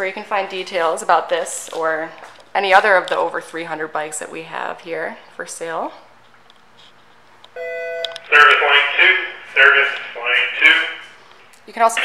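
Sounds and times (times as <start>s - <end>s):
faint room hiss: 4.2s - 12.0s
paging system alert chime: 7.6s - 8.2s.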